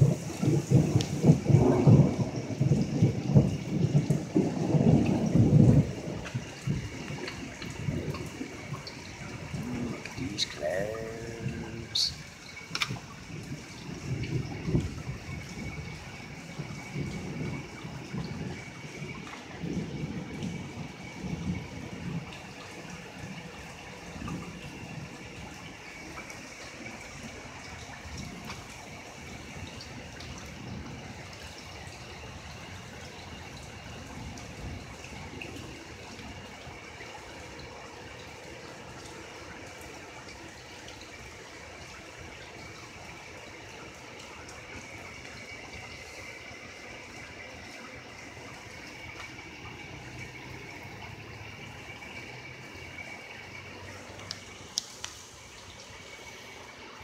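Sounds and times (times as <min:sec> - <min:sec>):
rolling thunder: 0:00.0 - 0:26.1
steady rainfall: 0:00.0 - 0:57.0.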